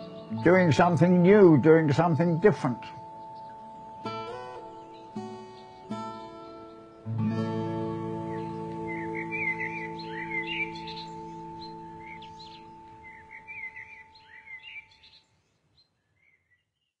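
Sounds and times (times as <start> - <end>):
acoustic guitar chord ringing: 0.0 - 14.4
birds chirping: 0.0 - 17.0.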